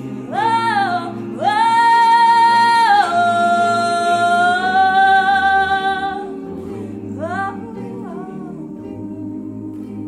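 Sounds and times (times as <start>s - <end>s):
choir holding a chord: 0.0s - 10.0s.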